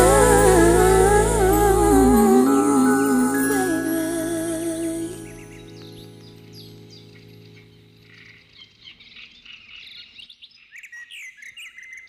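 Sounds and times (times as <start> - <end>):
held musical chord: 0.0 - 7.7.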